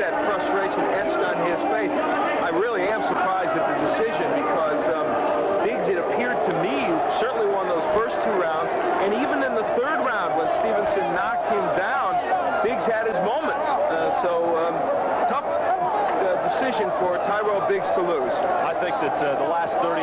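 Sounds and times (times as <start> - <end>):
crowd shouting: 0.0 - 20.0.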